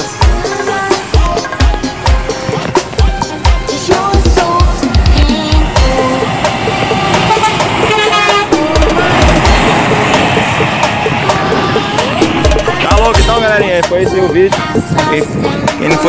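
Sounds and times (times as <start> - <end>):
electronic music with heavy beat: 0.0 - 16.0
truck horn sounding: 5.8 - 11.6.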